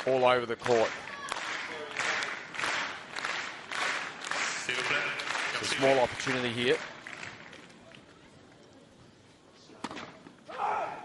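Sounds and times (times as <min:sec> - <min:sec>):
crowd applause: 0:00.6 - 0:07.7.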